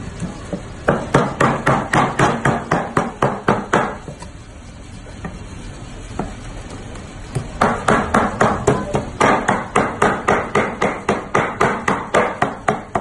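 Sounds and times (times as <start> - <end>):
cleaver chopping meat on wood: 0.8 - 4.0, 7.6 - 13.0.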